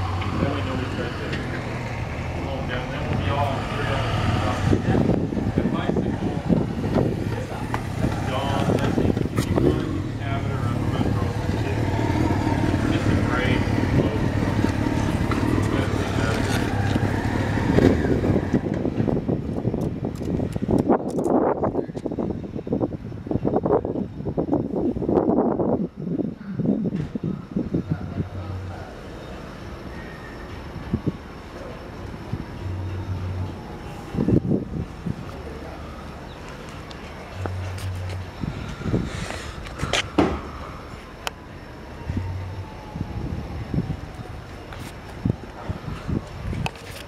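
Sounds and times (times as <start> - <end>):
indistinct voices: 0.0 - 19.4, 26.1 - 47.0
steady low hum: 0.0 - 46.7.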